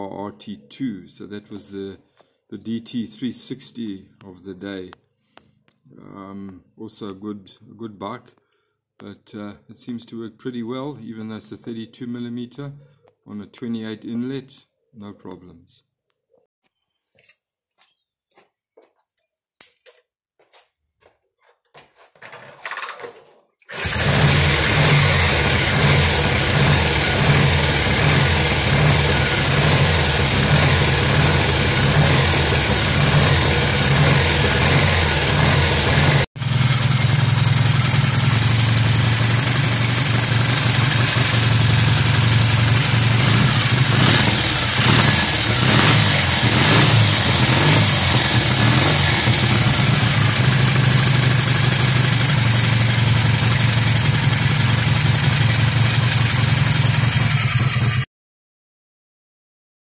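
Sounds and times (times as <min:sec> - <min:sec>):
motorcycle engine idling: 0:23.8 - 0:58.0.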